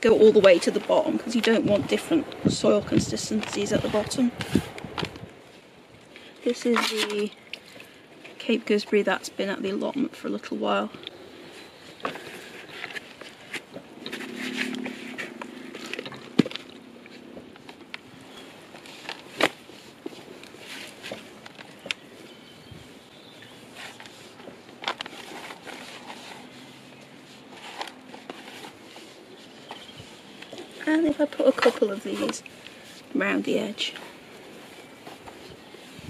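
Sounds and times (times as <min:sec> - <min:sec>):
soil rustling and crumbling: 0:00.0 - 0:36.0.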